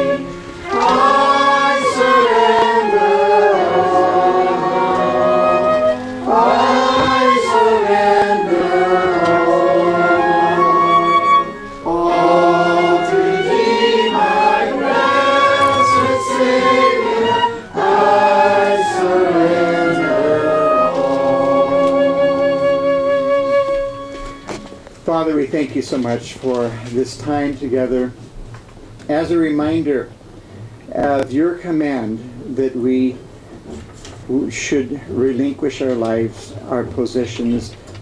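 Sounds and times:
congregation singing a hymn: 0.0 - 24.7.

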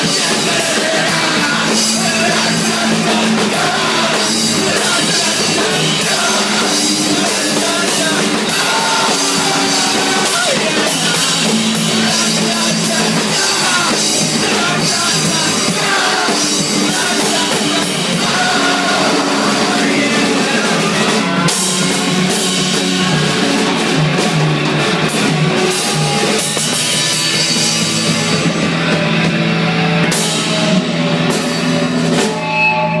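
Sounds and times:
drum kit: 0.0 - 33.0
electric guitars: 0.0 - 33.0.

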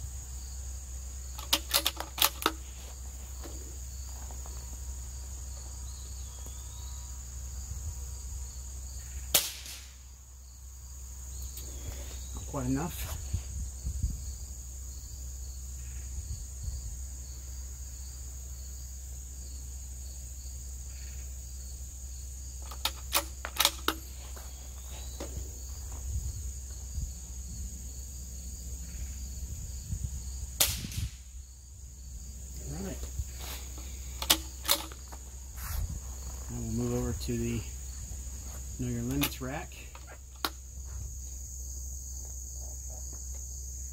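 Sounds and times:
insects trilling: 0.0 - 43.9
rifle bolt metallic clicks: 1.4 - 2.6, 22.6 - 24.0, 34.2 - 35.0, 39.0 - 40.6
suppressed rifle cracks: 1.4 - 2.6, 9.3 - 10.0, 22.6 - 24.2, 30.6 - 31.3, 33.7 - 35.2.

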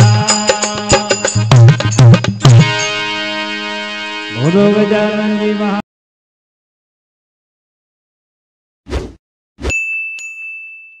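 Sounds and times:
bell ding: 9.7 - 11.0.

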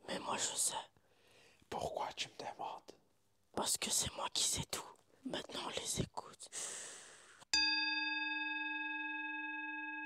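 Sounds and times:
singing bowl ringing: 7.6 - 10.0.

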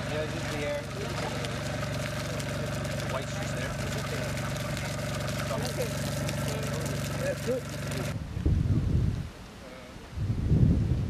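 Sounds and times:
tractor engine running: 0.0 - 8.2.

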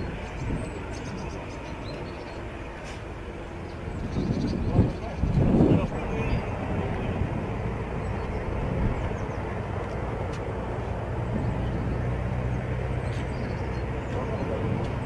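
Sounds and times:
vehicle engine droning: 0.0 - 15.0.

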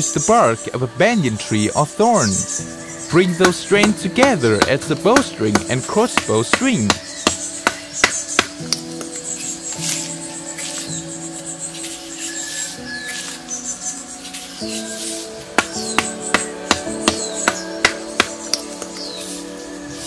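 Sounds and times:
background music held notes: 0.0 - 20.0.

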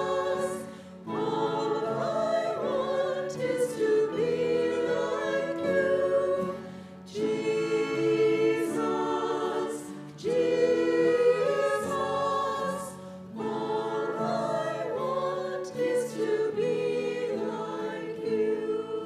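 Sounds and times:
choir singing a hymn: 0.0 - 19.0
singers breathing: 0.6 - 1.1, 6.6 - 7.1, 12.9 - 13.4.

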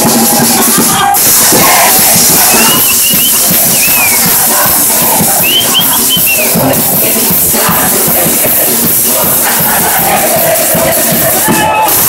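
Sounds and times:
brass band playing: 0.0 - 8.1
bass drum beat: 0.0 - 12.0.

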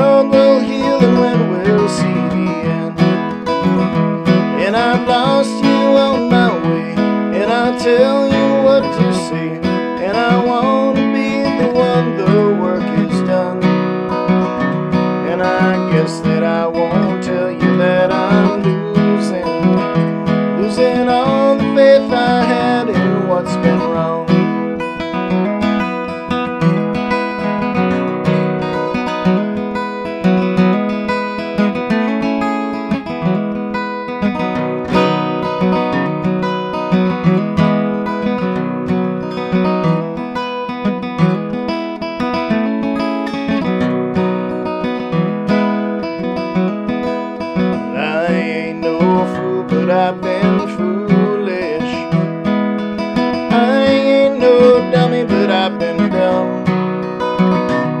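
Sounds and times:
man singing: 0.0 - 14.4, 15.1 - 24.8, 47.6 - 52.4, 53.2 - 56.8
acoustic guitar: 0.0 - 58.0.

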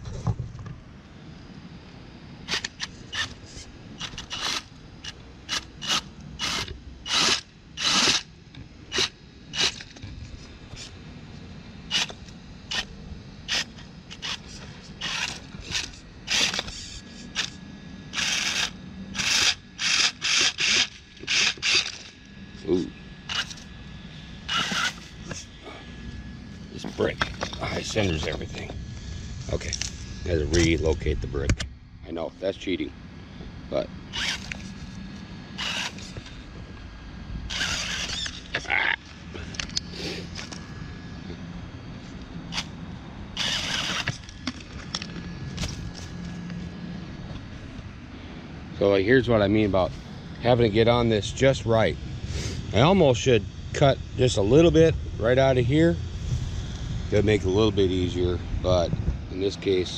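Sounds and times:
electric motor whine: 0.0 - 59.9.

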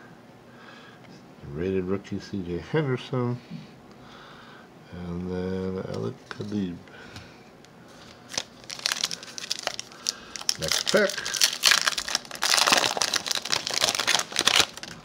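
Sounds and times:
card pack wrapper tearing and crinkling: 8.0 - 15.0.

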